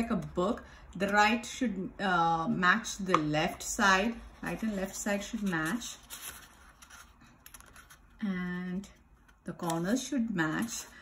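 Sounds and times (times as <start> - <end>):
paper rustling and scraping: 3.6 - 8.2.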